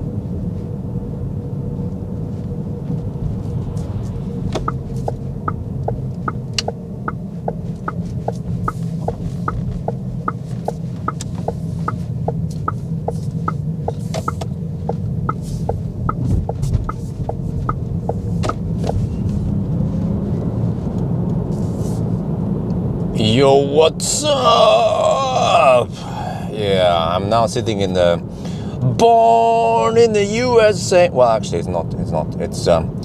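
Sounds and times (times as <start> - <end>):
road and tyre rumble: 0.0 - 33.0
turn signal ticking: 2.9 - 21.5.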